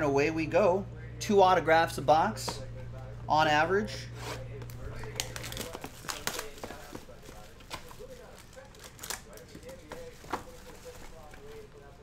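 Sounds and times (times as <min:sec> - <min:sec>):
crinkling: 0:04.1 - 0:12.0
cardboard boxes torn open: 0:05.1 - 0:07.0.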